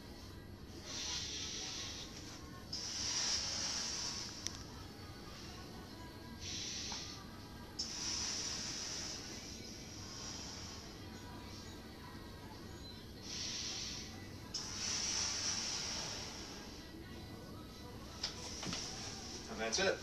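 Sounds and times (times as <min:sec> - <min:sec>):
hissing rush of air through balloon: 0:00.8 - 0:04.4, 0:06.4 - 0:07.2, 0:07.8 - 0:11.0, 0:13.2 - 0:16.8.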